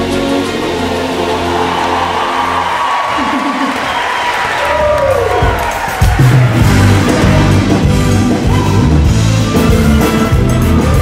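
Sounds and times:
crowd cheering: 0:00.5 - 0:10.3
live band music: 0:05.3 - 0:11.0.

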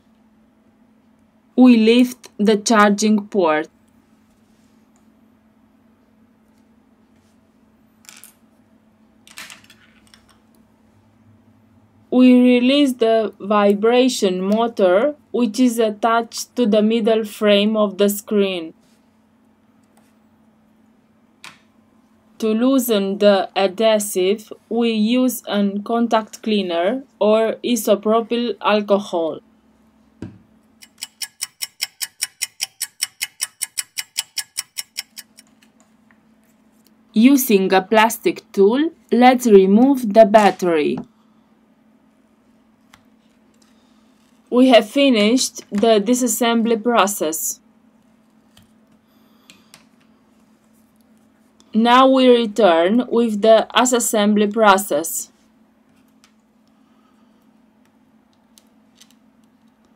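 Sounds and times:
clock ticking fast: 0:30.8 - 0:35.5.

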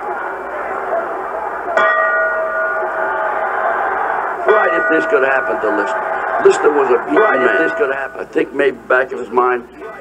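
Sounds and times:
steady background noise: 0:00.0 - 0:10.0
boxing ring bell ringing: 0:01.8 - 0:03.2, 0:04.5 - 0:05.9, 0:07.1 - 0:08.2.

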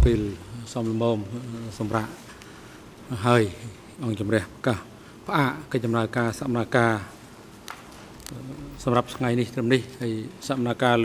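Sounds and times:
man speaking: 0:00.0 - 0:00.5.

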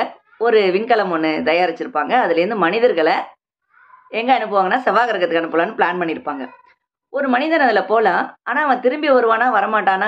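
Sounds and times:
woman speaking: 0:00.0 - 0:03.4, 0:04.1 - 0:10.0.

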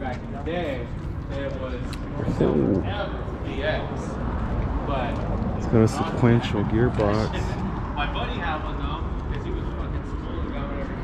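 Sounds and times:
steady low rumble: 0:00.7 - 0:05.9.

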